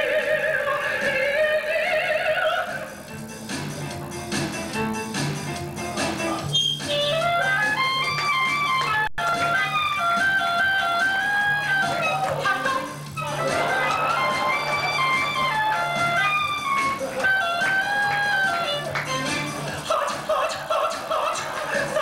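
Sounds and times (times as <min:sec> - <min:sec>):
clarinet melody: 0:04.0 - 0:19.6.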